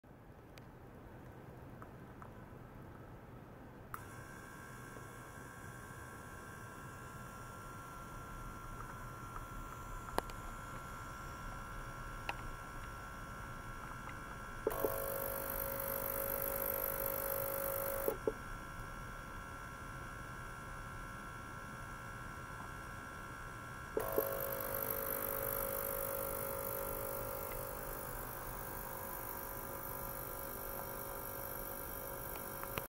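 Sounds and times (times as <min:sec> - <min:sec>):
high electrical hum: 0:00.1 - 0:32.9
ultrasonic bath hiss and buzz: 0:04.0 - 0:32.9.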